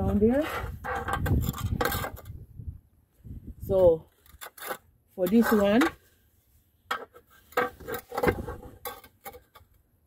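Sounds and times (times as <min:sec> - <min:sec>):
spirit level scraping on concrete: 0:00.0 - 0:02.4, 0:03.8 - 0:09.8.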